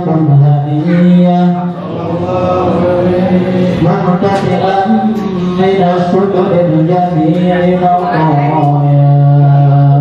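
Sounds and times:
man chanting into a microphone: 0.0s - 10.0s.

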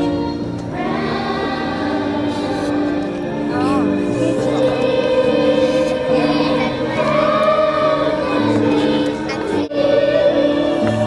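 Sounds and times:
children's choir singing: 0.0s - 11.0s
instrumental accompaniment: 0.0s - 11.0s.

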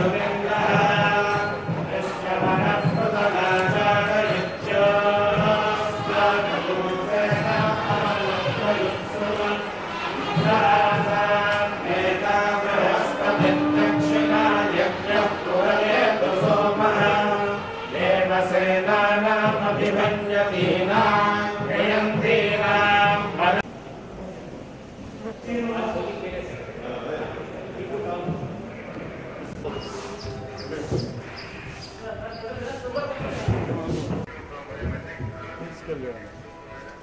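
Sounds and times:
low heavy thumping beats: 0.0s - 17.5s
group chanting: 0.0s - 23.7s
voices: 0.0s - 37.0s
held tones: 12.2s - 17.2s.

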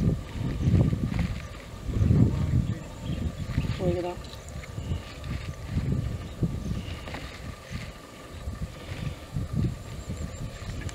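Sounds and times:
wind buffeting microphone: 0.0s - 10.9s.

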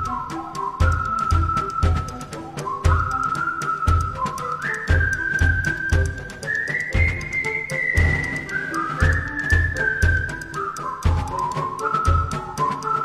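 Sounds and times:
steady drum beat: 0.0s - 12.8s
high whistled melody: 0.0s - 13.0s
light ticking percussion: 0.0s - 13.0s.

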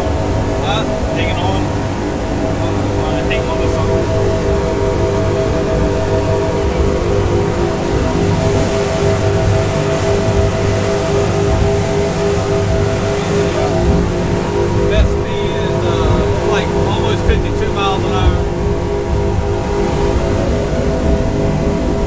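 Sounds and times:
outboard engines droning: 0.0s - 22.0s
wind and water rushing: 0.0s - 22.0s.

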